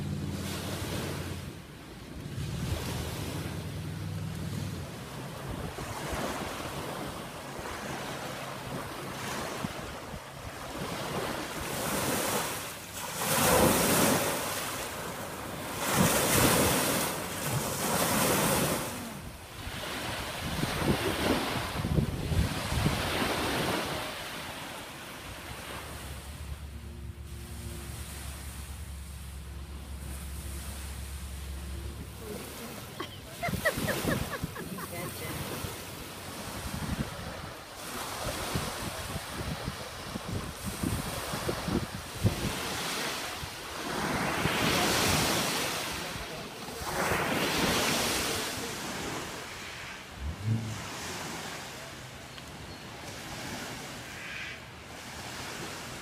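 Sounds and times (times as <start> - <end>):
lake waves washing onto pebble shore: 2.2 - 26.6, 27.8 - 52.2
wind buffeting microphone: 19.6 - 24.0, 36.2 - 43.0.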